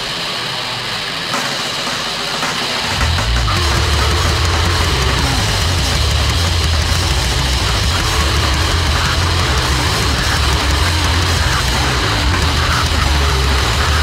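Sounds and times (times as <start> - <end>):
distorted grindcore band: 0.0 - 14.0.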